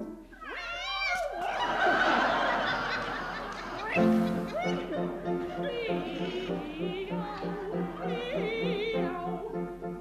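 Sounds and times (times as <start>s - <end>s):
woman singing operatically: 3.8s - 9.9s.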